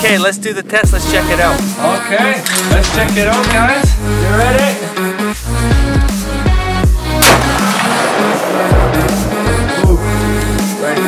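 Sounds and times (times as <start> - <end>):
rifle shot with echo: 7.2 - 9.6
electronic music with beat: 8.5 - 11.0.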